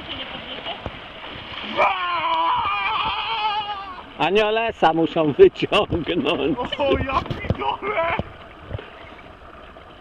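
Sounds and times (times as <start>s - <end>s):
calm river water: 0.0s - 10.0s.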